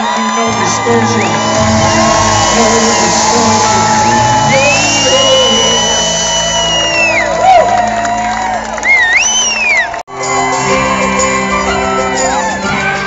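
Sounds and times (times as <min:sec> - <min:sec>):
crowd whooping and shouting: 0:00.0 - 0:13.0
rock band playing live: 0:00.6 - 0:08.6.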